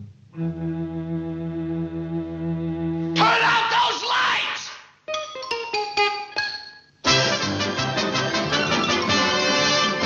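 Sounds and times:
plucked string notes: 5.1 - 6.8
full orchestra playing: 7.0 - 10.0.

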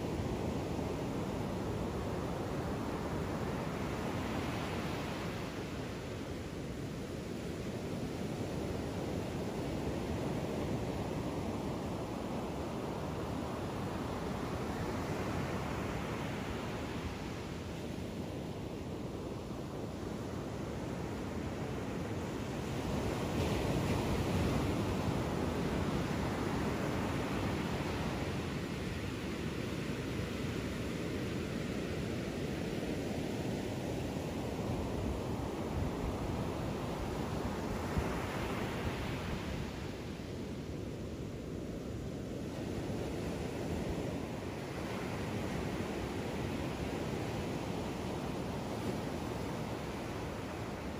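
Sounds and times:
ocean surf breaking on beach: 0.0 - 50.9.

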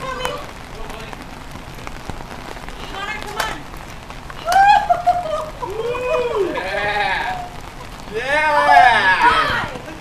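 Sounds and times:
rain hissing: 0.0 - 10.0
ticks of raindrops: 0.0 - 10.0.

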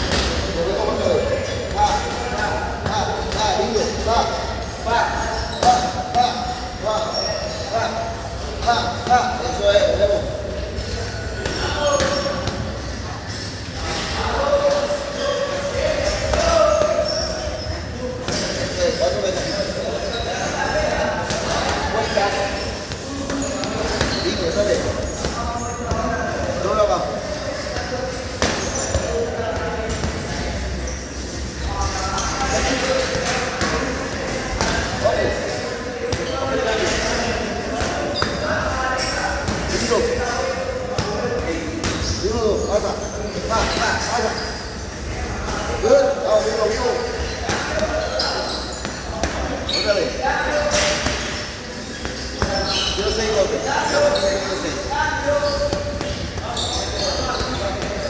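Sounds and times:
voices talking: 0.0 - 58.0.

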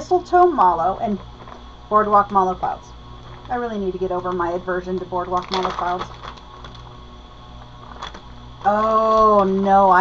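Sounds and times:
low room hum: 0.0 - 10.0
package clicks and rustling: 5.4 - 6.9, 7.6 - 8.4.

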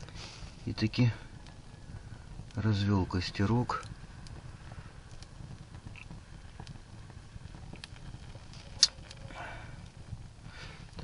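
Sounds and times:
campfire crackling and popping: 0.0 - 11.0
low steady rumble: 0.0 - 11.0.

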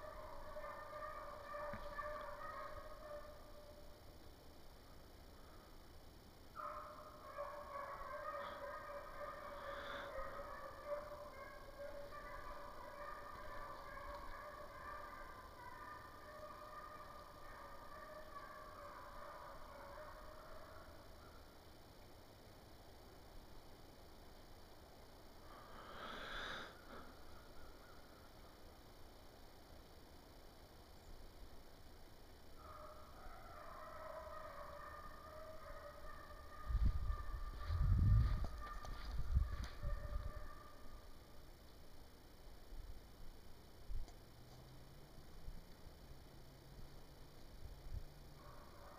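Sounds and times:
hounds baying: 0.0 - 3.8, 6.6 - 21.4, 32.6 - 41.1, 48.3 - 48.9.

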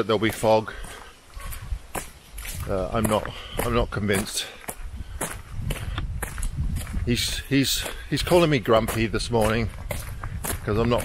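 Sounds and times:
footsteps on forest trail: 0.0 - 11.0.

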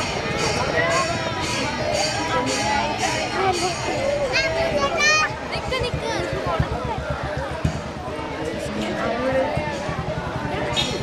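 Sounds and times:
crowd voices: 0.0 - 11.0
rapid low thuds: 0.0 - 11.0.

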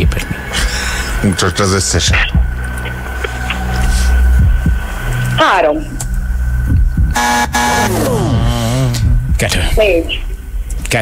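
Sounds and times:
quiz-show buzzer: 7.1 - 9.1.

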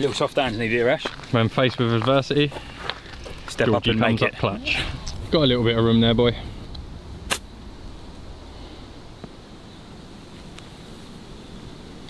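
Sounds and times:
low steady rumble: 3.0 - 10.4.

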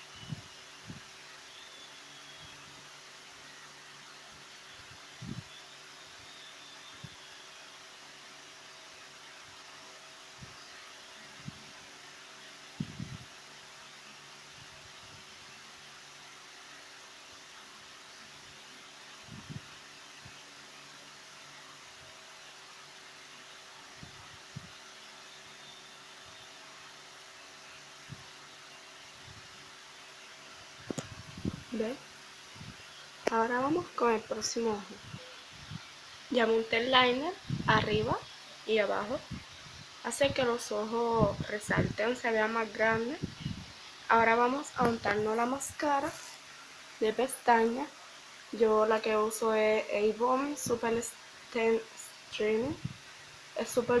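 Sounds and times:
faint hum: 0.0 - 54.0
low background hiss: 0.0 - 54.0.

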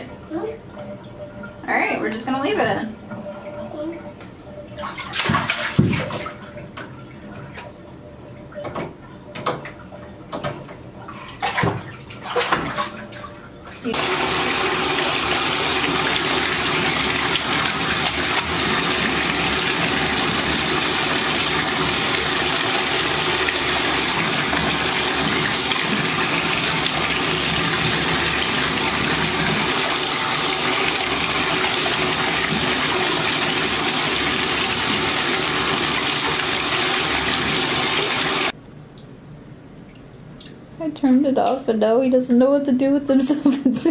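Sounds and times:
water rushing from bathtub spout: 13.8 - 38.6.

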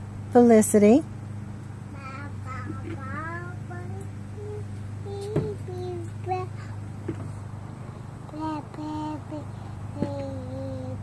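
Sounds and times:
toddler sing-song vocalizing: 1.9 - 7.2, 8.2 - 11.0.

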